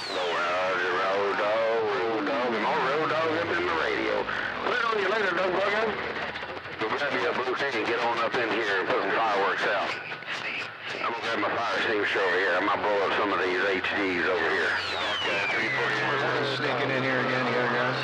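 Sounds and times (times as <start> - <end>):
garbled radio voices: 0.0 - 18.0.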